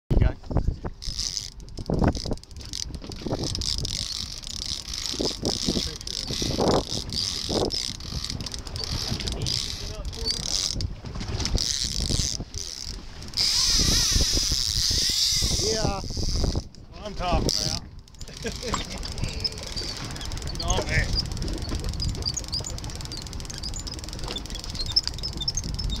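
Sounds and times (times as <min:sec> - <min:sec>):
boat and wind rumble: 0:00.1 - 0:26.0
fishing reel ratchet clicking: 0:01.0 - 0:10.9, 0:11.5 - 0:16.8, 0:17.4 - 0:26.0.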